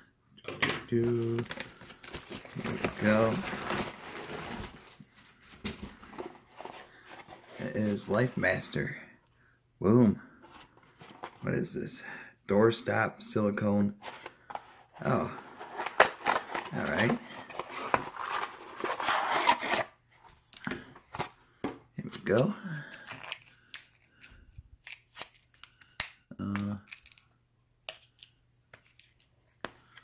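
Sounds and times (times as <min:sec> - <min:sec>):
paper packaging rustling: 0:00.9 - 0:08.1, 0:14.0 - 0:21.4
package rubbing and rasping: 0:14.0 - 0:20.0.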